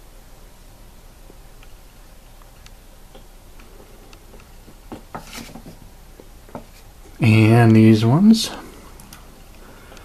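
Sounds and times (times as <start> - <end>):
faint clicks and taps: 2.4 - 6.9
foam boards being handled: 4.3 - 6.9.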